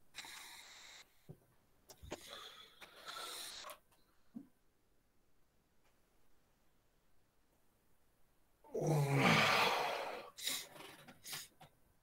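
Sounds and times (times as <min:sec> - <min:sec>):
breathy wordless voice: 0:08.7 - 0:10.8.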